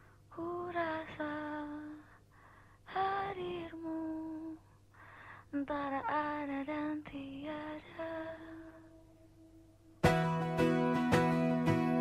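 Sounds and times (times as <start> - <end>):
woman singing long notes: 5.6 - 9.1.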